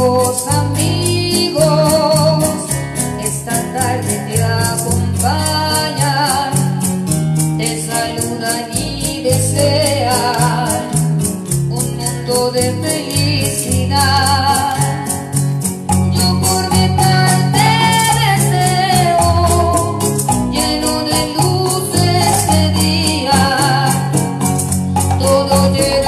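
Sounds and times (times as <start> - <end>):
electronic keyboard accompaniment: 0.0 - 26.0
maraca-like rhythm beat: 0.0 - 26.0
woman singing a ballad: 0.0 - 26.0.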